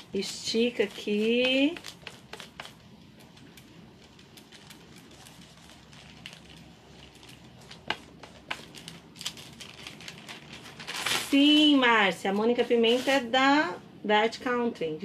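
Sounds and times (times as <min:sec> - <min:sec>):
paper film rustling and crinkling: 0:00.0 - 0:13.4.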